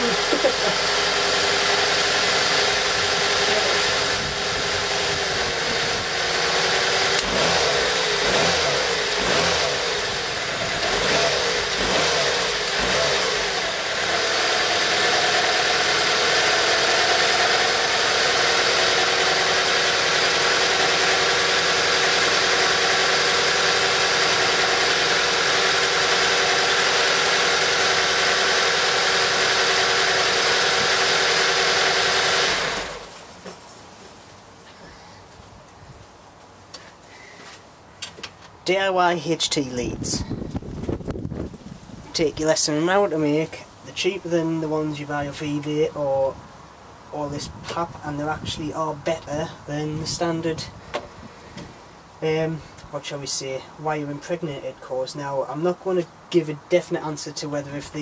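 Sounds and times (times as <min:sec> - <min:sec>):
car engine revving and idling: 0:00.0 - 0:33.3.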